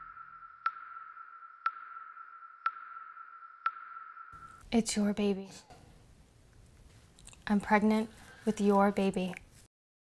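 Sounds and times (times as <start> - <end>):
sharp ticking: 0.0 - 4.6
steady high electronic tone: 0.0 - 4.6.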